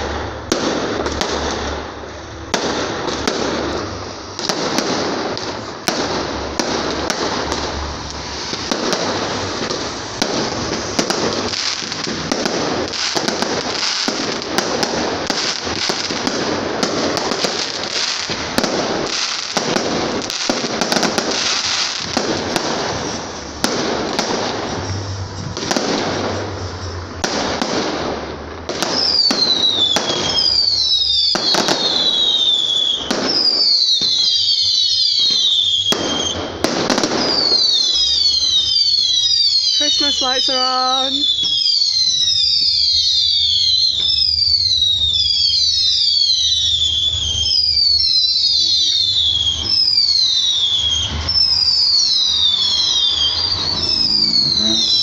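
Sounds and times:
falling firework whistles: 0.0 - 55.0
fireworks bangs and crackling: 0.0 - 55.0.

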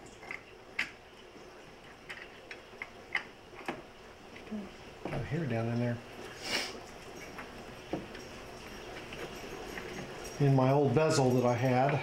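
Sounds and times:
small parts clicking and tapping: 2.0 - 4.5.

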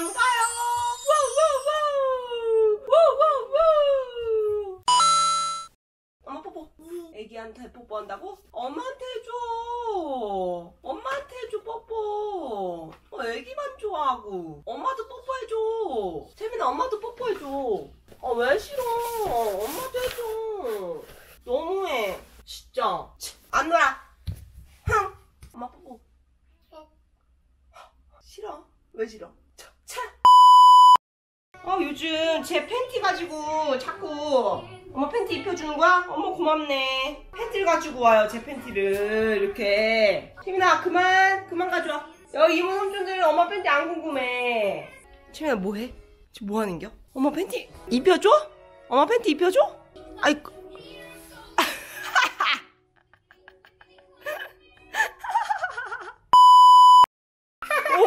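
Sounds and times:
high electronic beep: 30.3 - 31.0, 56.4 - 57.1.

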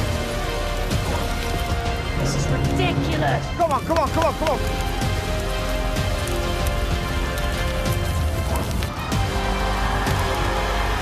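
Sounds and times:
backing music: 0.0 - 11.0
fire roaring and crackling: 0.0 - 11.0.

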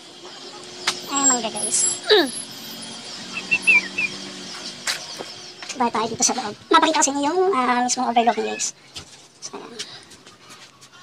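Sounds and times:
small bird chirping: 1.0 - 6.4.

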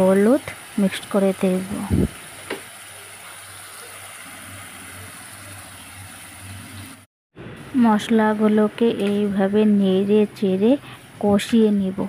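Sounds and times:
masala sizzling in hot oil: 0.0 - 12.0.

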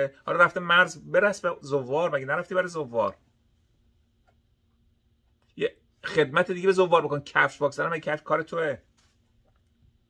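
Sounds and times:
man speaking: 0.0 - 3.2, 5.5 - 8.9
faint low hum: 0.0 - 10.0.

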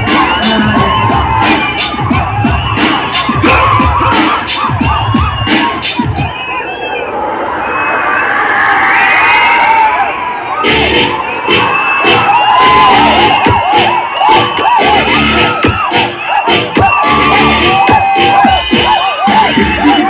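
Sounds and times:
whistling: 0.0 - 3.7, 4.5 - 10.0, 11.1 - 18.4
crowd cheering and shouting: 0.0 - 20.0.

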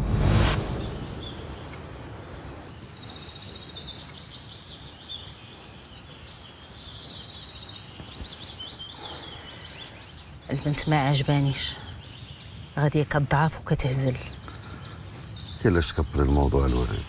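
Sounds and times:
outdoor background hiss: 0.0 - 17.0
small birds chirping and trilling: 0.6 - 17.0.

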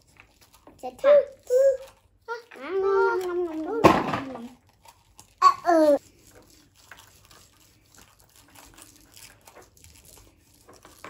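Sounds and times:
crackling of modelling foam: 0.0 - 11.0.

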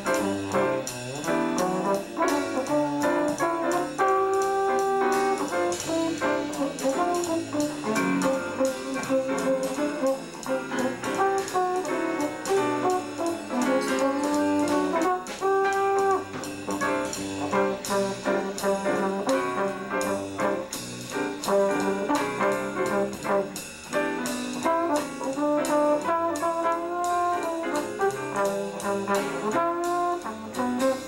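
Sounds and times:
piano bass and drums: 0.0 - 31.0
trombone and trumpet: 0.0 - 31.0.

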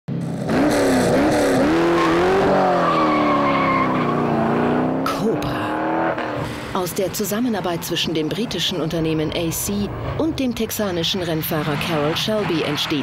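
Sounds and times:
car engine revving: 0.1 - 10.2.

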